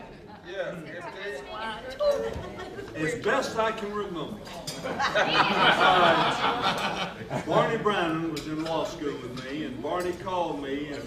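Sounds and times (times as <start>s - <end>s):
background chatter: 0.0s - 11.0s.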